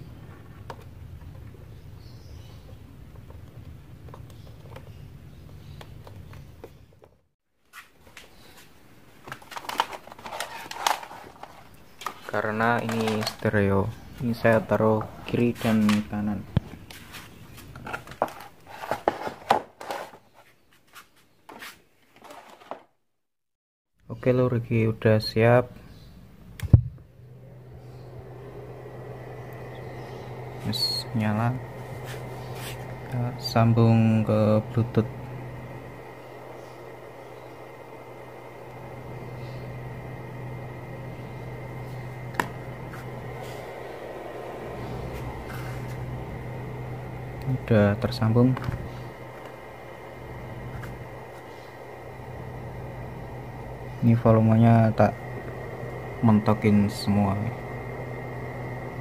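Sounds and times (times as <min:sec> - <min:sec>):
steady low hum: 0:09.7 - 0:17.9, 0:24.1 - 0:59.0.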